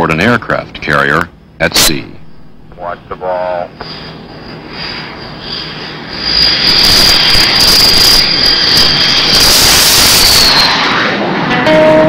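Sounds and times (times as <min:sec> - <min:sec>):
jet engine roar with high whine: 0:00.0 - 0:12.0.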